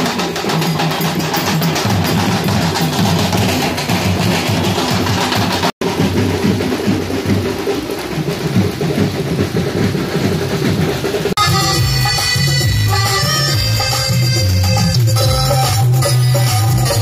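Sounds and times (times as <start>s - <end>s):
barrel drums beating fast rhythm: 0.0s - 17.0s.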